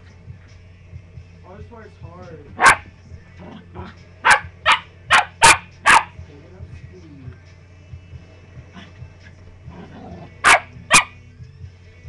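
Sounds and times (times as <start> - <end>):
small dog barking: 2.6 - 2.9, 4.2 - 6.2, 10.4 - 11.2.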